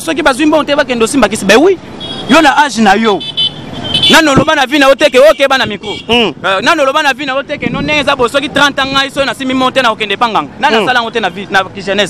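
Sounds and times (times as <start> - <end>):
man talking excitedly: 0.0 - 3.3, 4.0 - 12.0.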